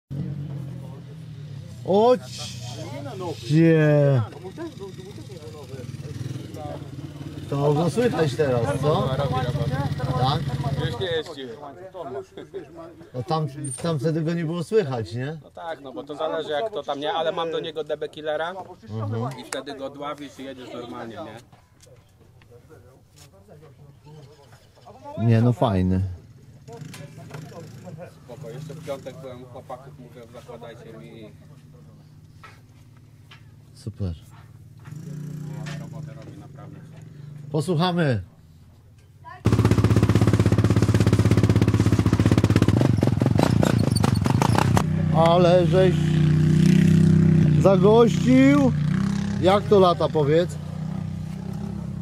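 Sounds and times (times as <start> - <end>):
atv engine idling: 4.2 - 11.2, 34.5 - 37.8, 38.4 - 52.0
quad engine idling: 39.2 - 45.0.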